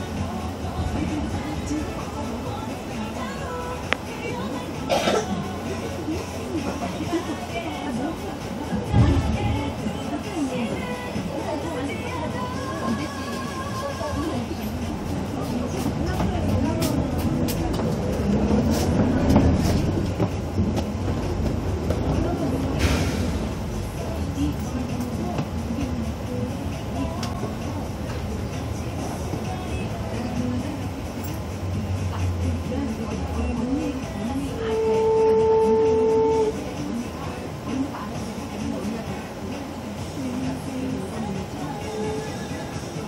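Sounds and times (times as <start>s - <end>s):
muffled voices: 0.0s - 43.0s
vehicle engine and road rumble: 0.0s - 43.0s
vehicle horn: 34.6s - 36.6s.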